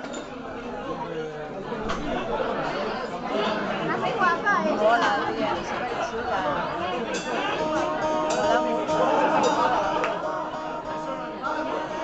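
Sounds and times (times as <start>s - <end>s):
people chatting in a room: 0.0s - 12.0s.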